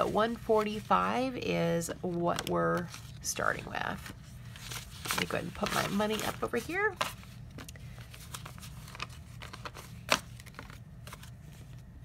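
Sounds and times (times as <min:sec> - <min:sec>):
banknotes rustling: 0:00.0 - 0:11.9.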